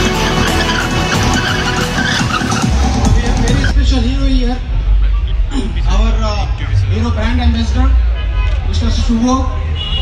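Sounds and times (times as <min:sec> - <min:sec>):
loud background music: 0:00.0 - 0:03.8
tyres skidding and squealing: 0:00.0 - 0:04.1.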